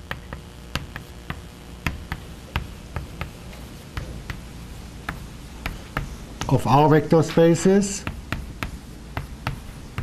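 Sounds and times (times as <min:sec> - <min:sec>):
chalk tapping on blackboard: 0:00.0 - 0:06.6, 0:07.8 - 0:10.0.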